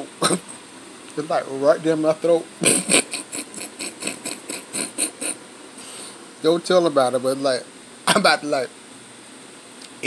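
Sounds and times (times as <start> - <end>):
man wheezing laughter: 2.6 - 5.4.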